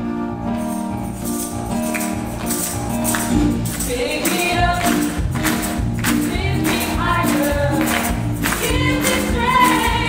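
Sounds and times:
upbeat gospel instrumental: 0:00.0 - 0:10.0.

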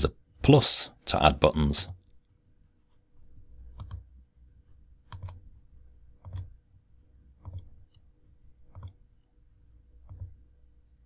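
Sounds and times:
computer mouse clicks: 0:03.7 - 0:04.1, 0:05.0 - 0:05.5, 0:06.1 - 0:06.6, 0:07.4 - 0:08.1, 0:08.7 - 0:09.3, 0:10.0 - 0:10.4.

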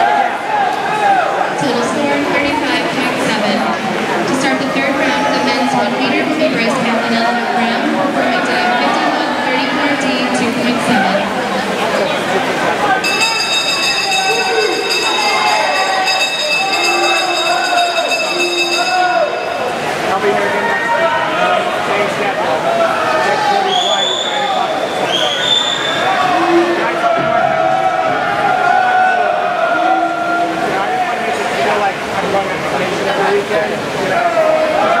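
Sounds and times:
crowd shouting and cheering: 0:00.0 - 0:32.1, 0:34.1 - 0:35.0.

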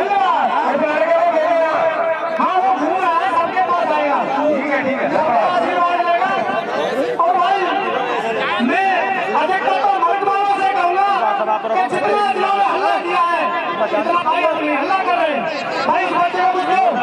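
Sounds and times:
men talking over one another: 0:00.0 - 0:17.0
voice through loudspeaker: 0:00.0 - 0:17.0.

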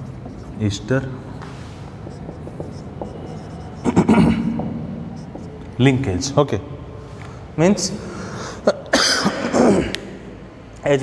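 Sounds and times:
man coughing: 0:03.9 - 0:04.5, 0:08.6 - 0:10.0.

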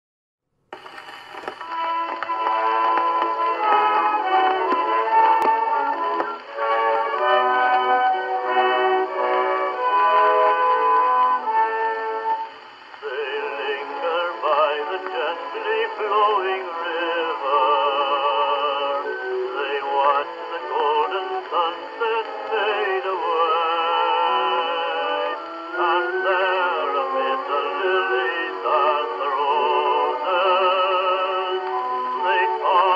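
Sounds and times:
person singing with vibrato: 0:13.0 - 0:32.9.

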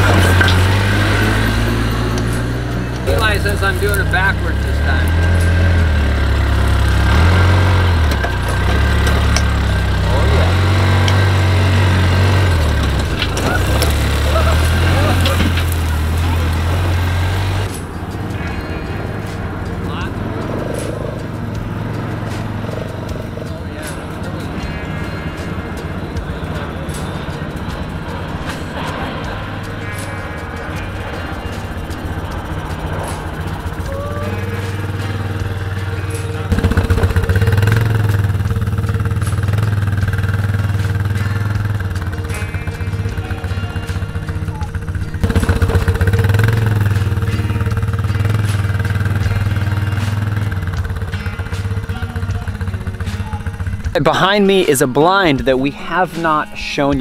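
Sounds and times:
quad engine running: 0:00.0 - 0:56.0
background music with beat: 0:00.0 - 0:57.0.

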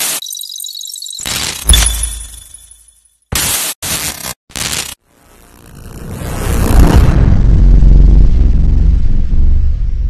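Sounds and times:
deep rumble: 0:05.8 - 0:10.0.

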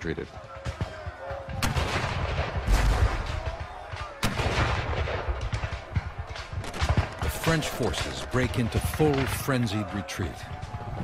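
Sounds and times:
musket shots: 0:00.6 - 0:09.4
cannon boom: 0:01.5 - 0:07.3.

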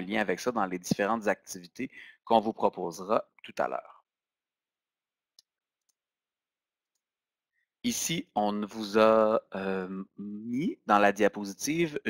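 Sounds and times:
man's voice: 0:07.9 - 0:12.0.

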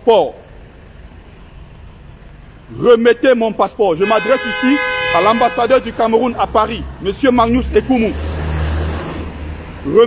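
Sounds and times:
vehicle passing: 0:00.7 - 0:10.0.

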